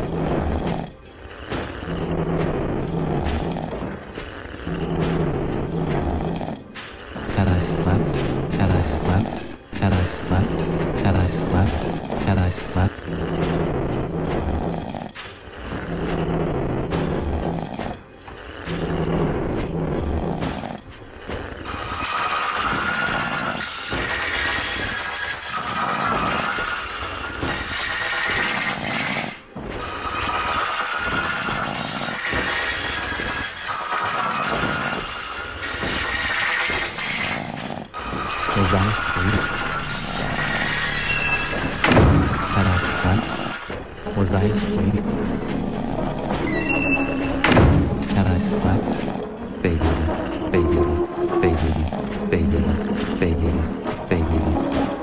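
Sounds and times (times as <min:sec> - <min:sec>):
held synth tones: 0:38.0 - 0:55.0
pulsing bass: 0:38.1 - 0:54.8.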